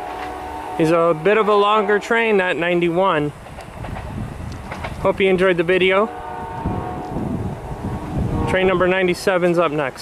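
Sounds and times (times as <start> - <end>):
train horn chord: 0.0 - 2.9, 5.8 - 9.1
train wheels rumbling on rails: 0.0 - 10.0.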